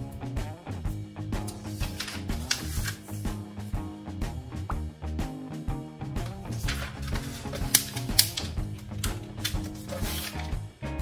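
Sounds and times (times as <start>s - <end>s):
background music with steady beat: 0.0s - 11.0s
paper being folded and creased: 1.5s - 3.2s, 6.2s - 10.5s.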